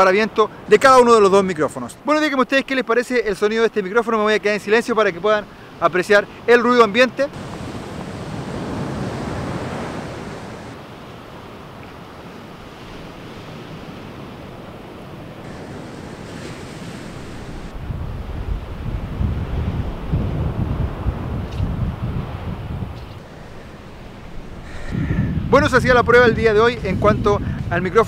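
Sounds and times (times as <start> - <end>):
ocean surf washing onto beach: 4.6 - 28.0
wind rumbling on microphone: 7.4 - 28.0.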